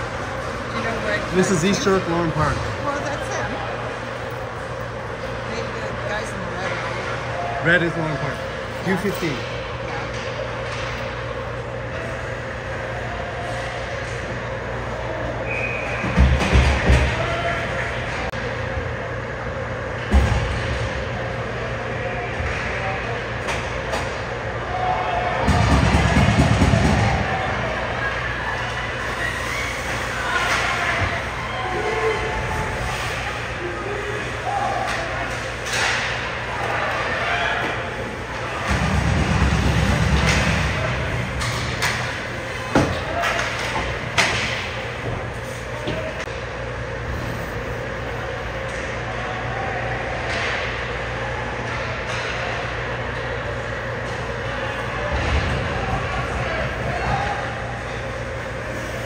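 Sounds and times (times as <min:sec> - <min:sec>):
din of ice rink: 0:00.0 - 0:59.0
steady hum: 0:00.0 - 0:59.0.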